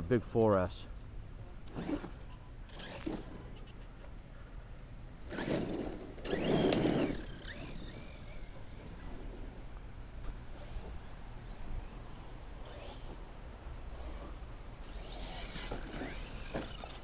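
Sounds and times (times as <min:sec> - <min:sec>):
tyres spinning on dirt: 0:01.7 - 0:03.5, 0:05.3 - 0:09.7, 0:13.9 - 0:17.0
electric motor whining: 0:05.3 - 0:09.4, 0:13.9 - 0:17.0.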